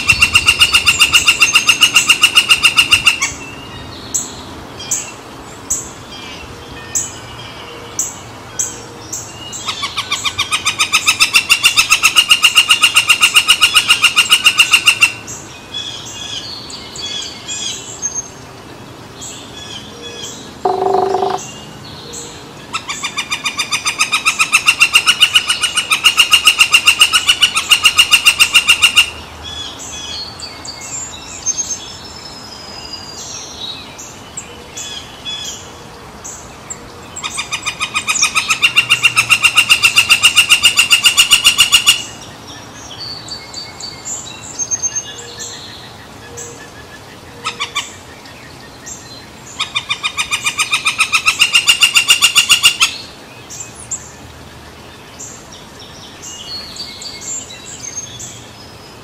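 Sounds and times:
woodpecker calling: 0:00.0 - 0:03.6, 0:09.5 - 0:15.2, 0:19.6 - 0:21.6, 0:22.7 - 0:29.7, 0:37.2 - 0:42.3, 0:44.7 - 0:48.0, 0:48.8 - 0:54.1
brief low tone: 0:20.7 - 0:21.4.

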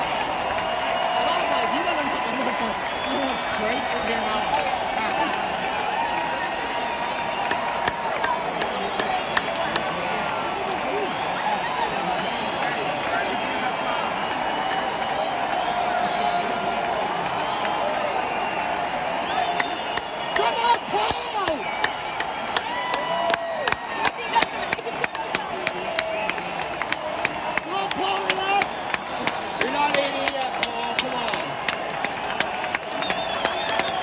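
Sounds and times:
crowd cheering and talking: 0:00.0 - 0:34.0
scattered hand claps: 0:00.0 - 0:34.0.

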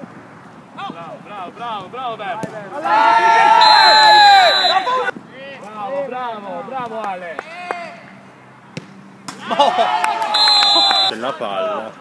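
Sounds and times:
player shouting: 0:02.8 - 0:05.1, 0:10.4 - 0:11.1
shrill whistle: 0:03.6 - 0:05.0, 0:10.4 - 0:11.1.

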